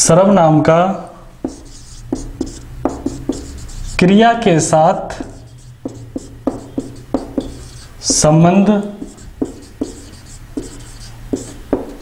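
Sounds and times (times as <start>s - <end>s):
marker pen writing on whiteboard: 0.9s - 12.0s.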